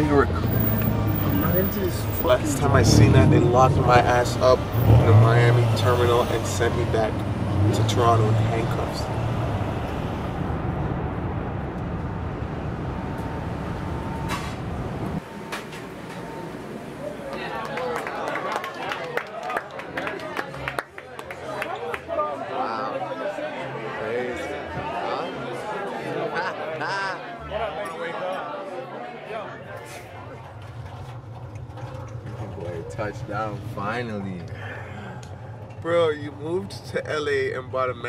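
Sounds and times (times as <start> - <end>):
road and engine noise in car cabin: 0.0 - 17.4.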